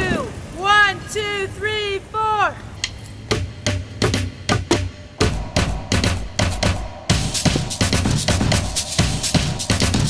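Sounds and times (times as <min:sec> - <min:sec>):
sticks beating street objects: 0:02.8 - 0:05.2.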